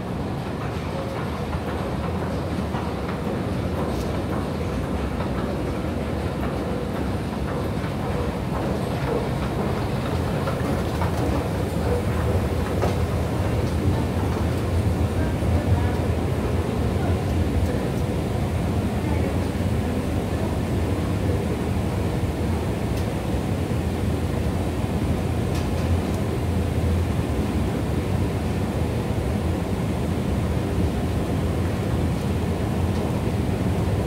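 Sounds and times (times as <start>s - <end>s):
rattling escalator steps: 0.0s - 34.0s.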